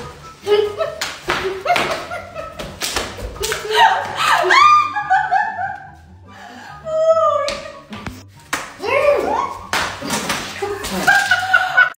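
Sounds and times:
background music: 0.0 - 11.9
people laughing: 0.6 - 6.1, 10.5 - 11.9
people shrieking: 3.7 - 5.1
tortillas smacking faces: 9.6 - 11.5.

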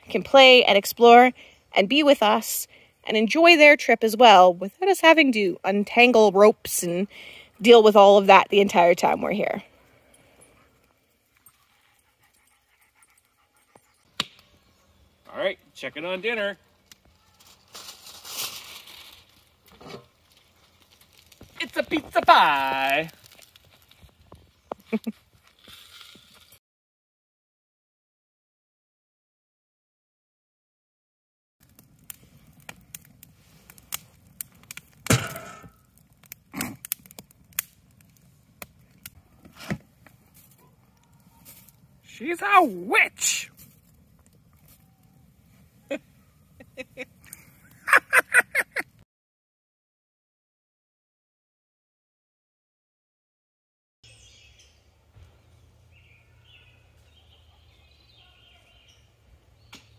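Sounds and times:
wood fire crackling: 0.0 - 26.6, 31.6 - 49.0
loud fire pops: 31.6 - 40.6.

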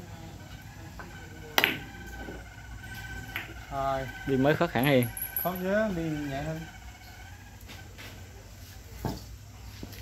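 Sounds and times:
billiard balls clicking: 1.0 - 5.8.

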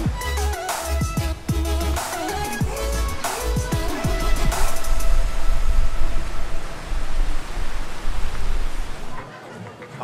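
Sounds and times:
deep fluctuating rumble: 1.3 - 9.2
loud rushing noise: 1.3 - 9.2.

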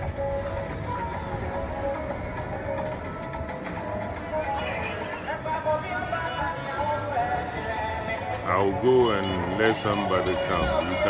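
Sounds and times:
music over loudspeaker: 0.0 - 11.0.

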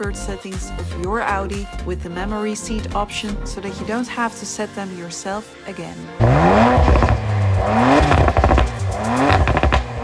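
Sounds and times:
car engine revving: 6.2 - 10.0.

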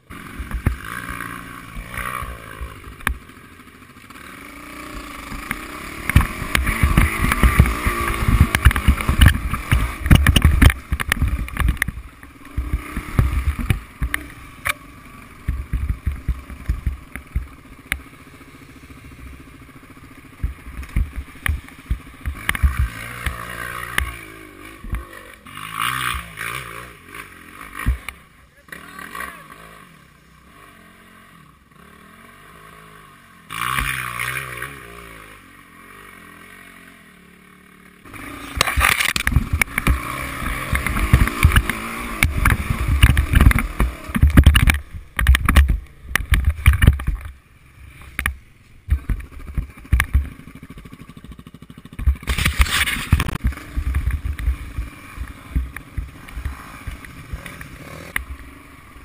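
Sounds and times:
motorcycle engine revving: 0.0 - 59.0
knocks and rattles: 5.3 - 14.3, 38.6 - 47.4.

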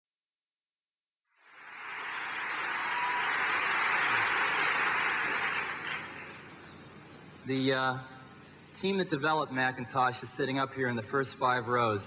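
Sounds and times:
large audience applauding: 1.4 - 6.6.

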